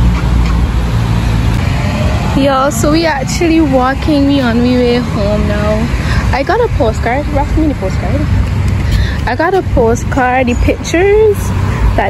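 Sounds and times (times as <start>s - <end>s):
traffic noise: 0.0s - 12.0s
vehicle engine rumble: 0.0s - 12.0s.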